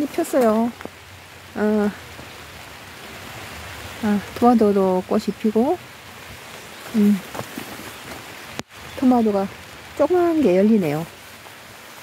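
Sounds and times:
steady rain hiss: 0.0s - 12.0s.

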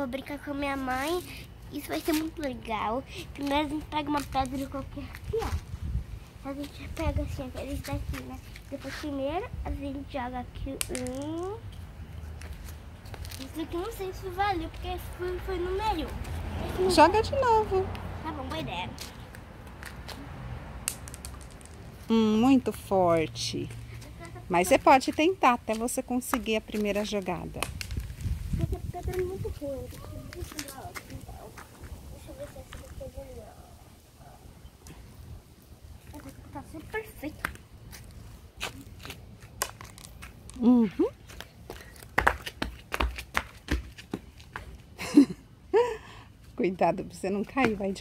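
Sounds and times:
flip-flop footsteps on concrete: 11.7s - 13.9s, 14.6s - 17.0s, 17.9s - 20.3s, 22.6s - 33.0s, 37.3s - 45.0s, 47.3s - 48.0s
stone clicking on concrete: 20.8s - 21.9s.

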